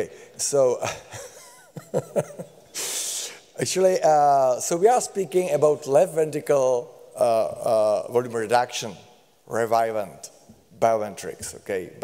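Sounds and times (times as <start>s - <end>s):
man chuckling softly: 0.8s - 2.8s.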